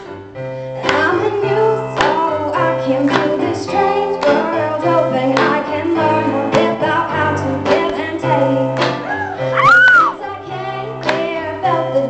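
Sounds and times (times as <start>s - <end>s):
woman singing: 0.8s - 12.0s
bass line: 9.0s - 10.2s.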